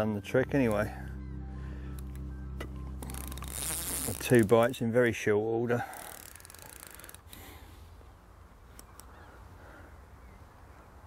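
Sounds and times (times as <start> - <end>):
background music with low held notes: 0.0 - 5.6
fishing reel ratcheting rasp: 3.0 - 4.6, 5.8 - 7.3.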